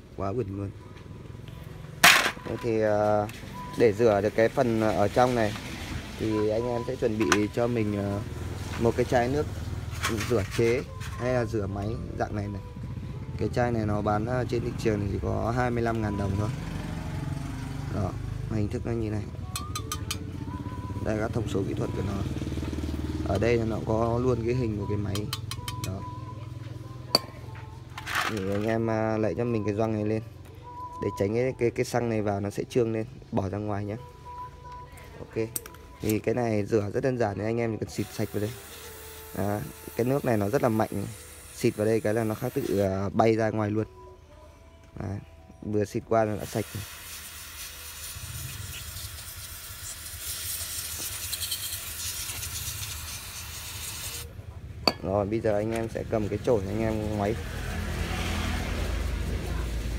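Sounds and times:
aerosol spray hissing: 38.0 - 42.8, 46.4 - 54.3
sharp metallic clink: 54.8 - 55.2.

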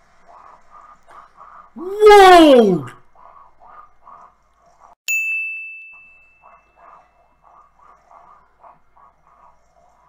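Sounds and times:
high-pitched ding: 5.1 - 6.4.

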